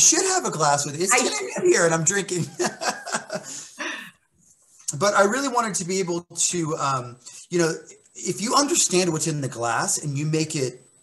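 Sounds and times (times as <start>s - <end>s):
laughter: 1.1s - 3.6s.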